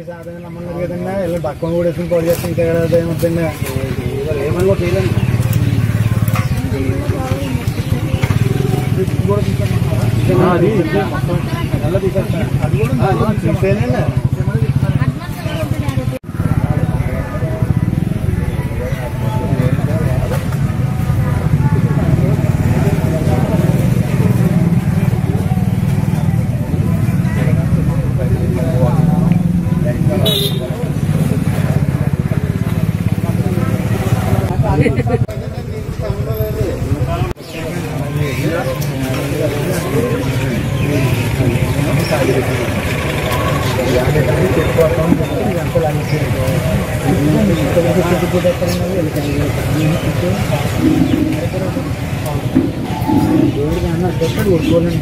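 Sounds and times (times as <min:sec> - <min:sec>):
men talking: 0:00.0 - 0:07.3, 0:07.9 - 0:15.0, 0:27.3 - 0:55.0
pulsing engine rumble: 0:01.8 - 0:37.1, 0:40.4 - 0:55.0.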